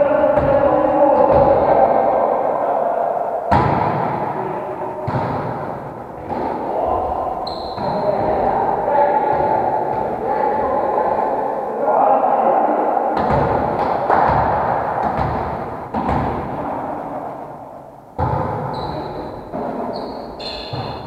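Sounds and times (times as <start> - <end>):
players' voices: 0.0 - 21.0
volleyball being hit: 3.5 - 4.3, 5.0 - 8.4, 13.2 - 16.7, 18.2 - 21.0.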